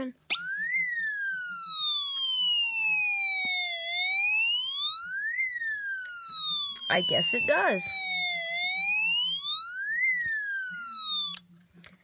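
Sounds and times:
electronic siren wail: 0.3 - 11.4.

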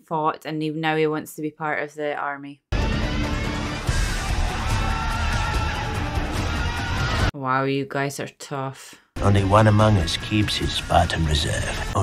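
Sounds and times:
men shouting: 4.0 - 7.3.

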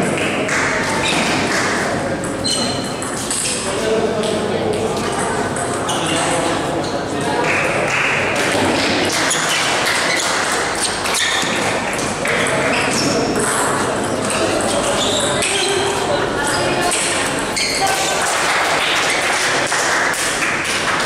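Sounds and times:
murmur of voices: 0.0 - 21.0.

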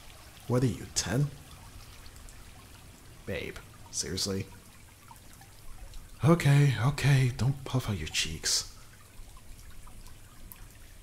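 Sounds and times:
small water drips: 0.0 - 11.0
water trickling: 0.0 - 11.0.

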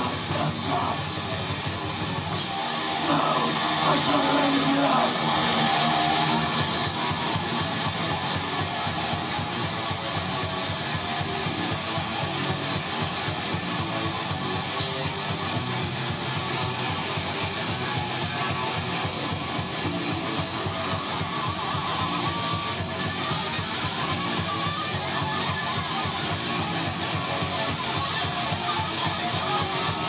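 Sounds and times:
metal band playing: 0.0 - 30.0.

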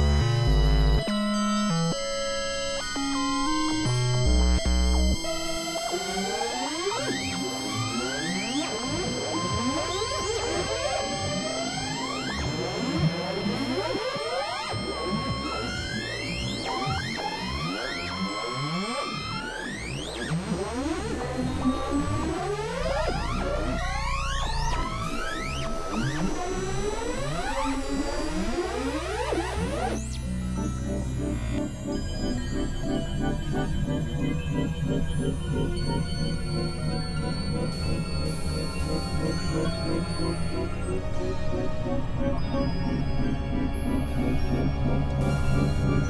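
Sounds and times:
high drone tones: 0.0 - 46.0
rising synthesizer pitch glides: 0.0 - 46.0.

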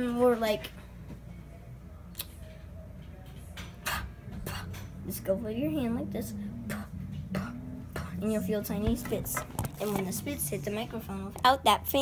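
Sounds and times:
steady low rumble: 4.1 - 12.0.

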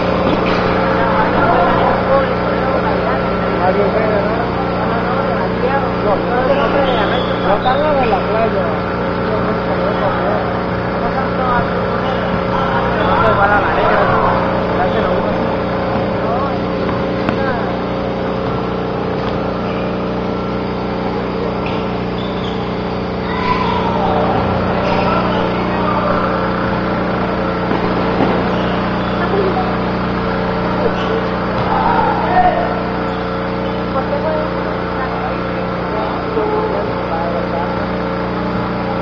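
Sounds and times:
steady mechanical hum: 0.0 - 39.0
people calling out: 4.4 - 37.0.

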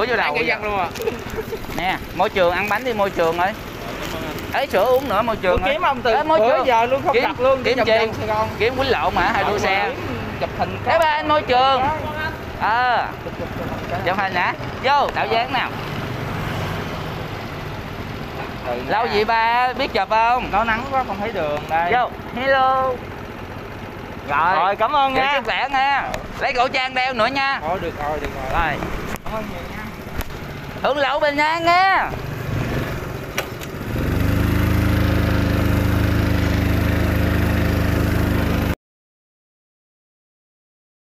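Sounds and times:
small motorbike engine revving: 0.0 - 10.4, 32.1 - 38.8
street noise: 0.0 - 38.8
vehicle engine idling: 0.0 - 38.8.

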